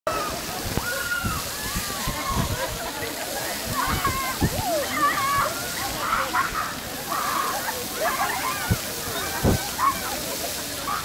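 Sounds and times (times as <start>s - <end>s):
fountain jets spraying water: 0.1s - 11.0s
people shrieking and yelling: 0.1s - 11.0s.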